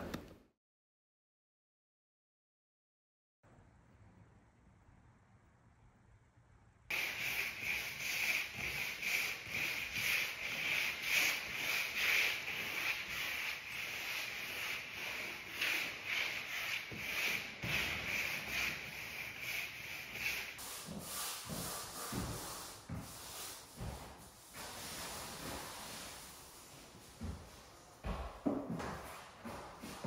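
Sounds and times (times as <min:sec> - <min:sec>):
scratchy brush strokes: 0:06.9 - 0:27.6.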